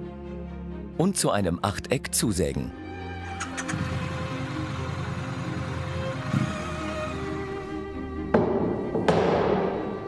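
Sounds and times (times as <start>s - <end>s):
background music: 0.0s - 10.0s
motorcycle engine idling: 3.4s - 7.4s.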